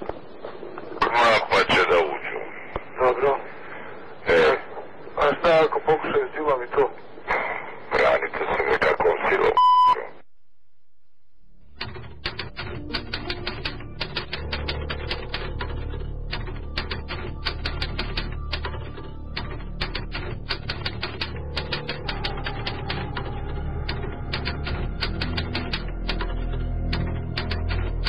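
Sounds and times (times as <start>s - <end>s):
voice on phone: 1.0s - 3.5s, 7.9s - 10.2s
low background music drone: 11.7s - 28.0s
typewriter keystrokes clacking: 11.8s - 28.0s.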